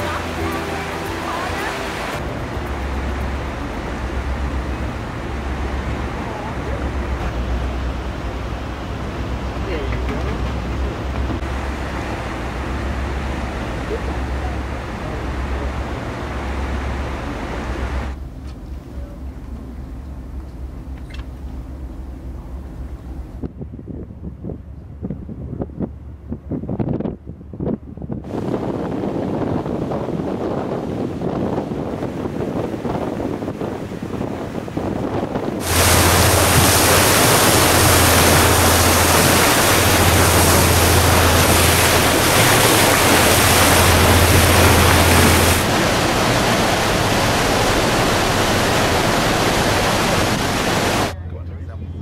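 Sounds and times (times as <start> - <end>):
water rushing against ship bow: 0.0 - 23.6, 28.2 - 51.2
low hum: 0.0 - 26.4, 35.6 - 52.0
churning wake: 0.0 - 52.0
wind on microphone: 22.3 - 51.2.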